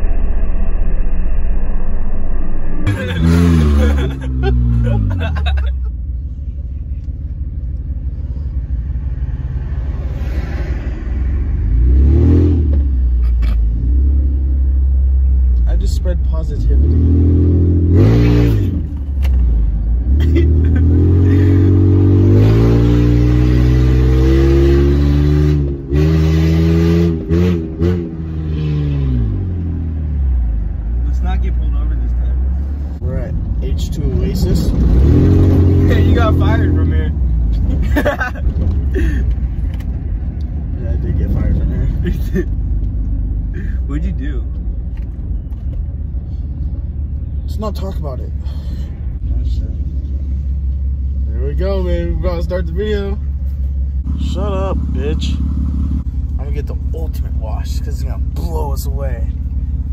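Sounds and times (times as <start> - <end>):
van engine rumbling while driving: 2.9 - 59.9.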